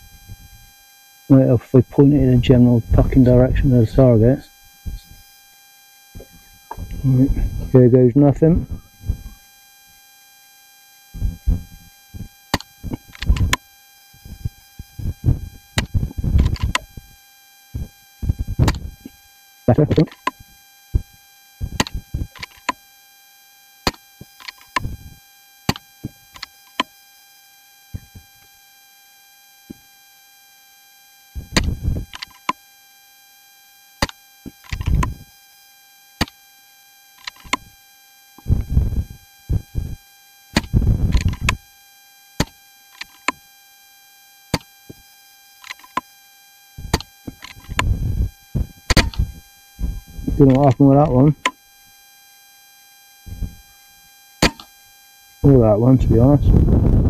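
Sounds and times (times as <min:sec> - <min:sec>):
faint high whine: 0:00.0 - 0:57.0
microphone clicks: 0:02.1 - 0:05.3, 0:06.2 - 0:09.4, 0:11.2 - 0:13.6, 0:14.2 - 0:17.2, 0:17.8 - 0:19.2, 0:19.8 - 0:22.8, 0:23.9 - 0:26.9, 0:27.9 - 0:28.3, 0:31.4 - 0:32.6, 0:34.0 - 0:35.3, 0:37.2 - 0:37.7, 0:38.4 - 0:41.6, 0:46.8 - 0:51.6, 0:53.3 - 0:53.7, 0:55.5 - 0:57.0.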